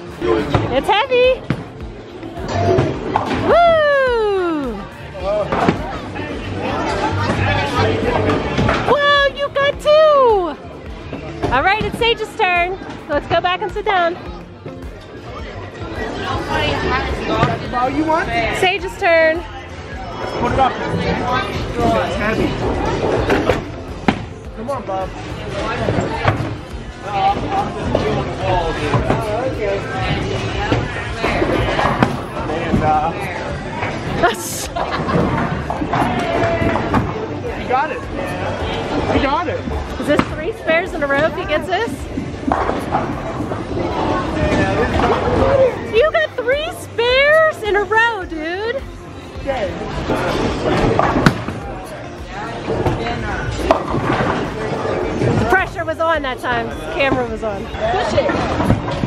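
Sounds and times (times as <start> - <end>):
background music: 0.0 - 59.0
bowling alley noise: 1.4 - 18.6, 19.7 - 55.8, 56.6 - 59.0
people talking: 44.6 - 48.8.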